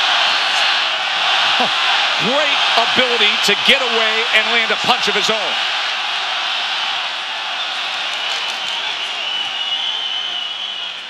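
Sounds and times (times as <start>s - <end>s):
arena crowd hum: 0.0s - 11.0s.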